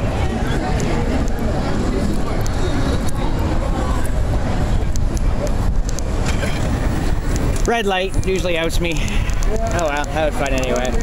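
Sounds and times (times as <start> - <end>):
wheelchair rolling on pavement: 0.2 - 11.0
small clicks and rattles: 5.8 - 11.0.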